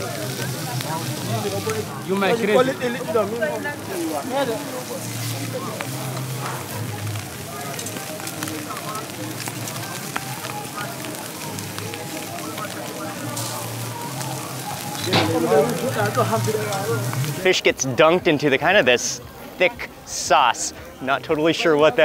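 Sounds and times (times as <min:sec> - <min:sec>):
background chatter: 0:00.0 - 0:22.0
wood fire crackling: 0:00.0 - 0:22.0.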